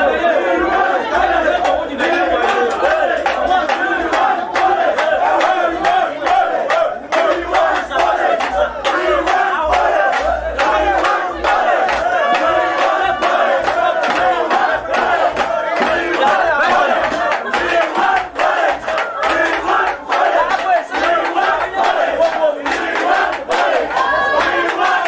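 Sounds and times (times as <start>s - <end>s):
crowd shouting and chanting: 0.0s - 25.0s.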